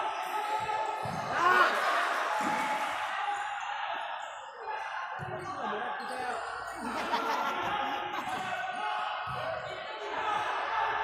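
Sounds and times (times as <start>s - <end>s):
chatter of spectators: 0.0s - 11.0s.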